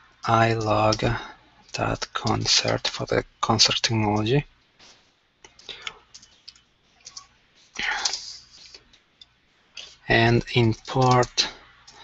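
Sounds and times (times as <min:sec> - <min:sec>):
computer keyboard keystrokes: 0:05.5 - 0:08.2, 0:09.8 - 0:12.0.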